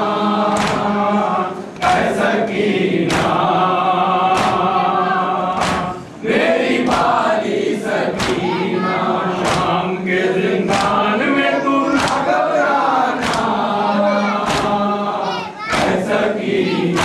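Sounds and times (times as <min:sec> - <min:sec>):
male chorus chanting lament: 0:00.0 - 0:17.0
chest-beating slaps: 0:00.5 - 0:01.0, 0:01.8 - 0:03.6, 0:04.2 - 0:04.8, 0:05.5 - 0:09.8, 0:10.7 - 0:11.1, 0:12.0 - 0:12.3, 0:13.2 - 0:13.6, 0:14.4 - 0:14.8, 0:15.7 - 0:16.2.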